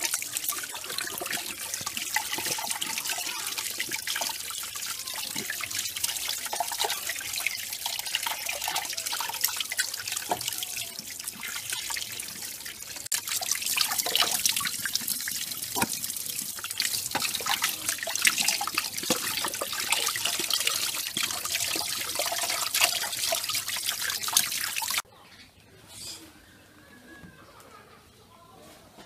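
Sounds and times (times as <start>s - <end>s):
tap water splashing over chicken: 10.2s - 11.0s, 13.1s - 25.0s.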